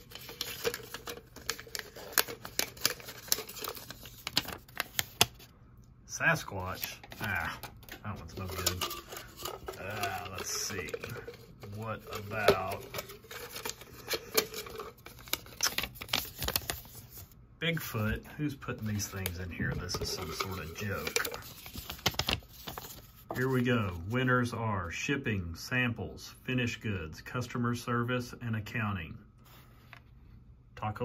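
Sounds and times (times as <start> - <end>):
paper slips rustling in plastic cup: 0.0 - 5.5, 6.4 - 17.3, 18.0 - 23.9.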